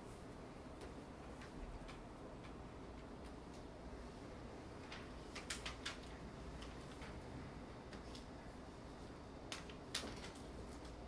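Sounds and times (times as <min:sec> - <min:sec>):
low room hum: 0:00.0 - 0:11.0
faint clicks and taps: 0:00.8 - 0:03.7.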